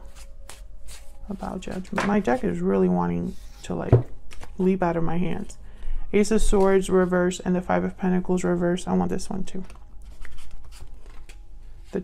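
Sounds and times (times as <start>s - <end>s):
cards rustling and sliding: 0.0s - 2.0s, 9.6s - 12.0s.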